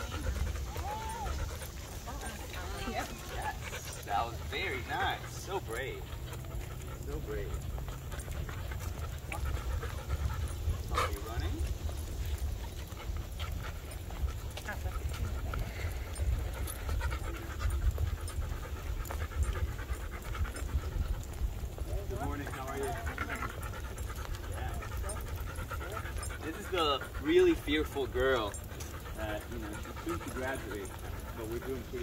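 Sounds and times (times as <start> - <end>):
dog panting: 0.0 - 32.0.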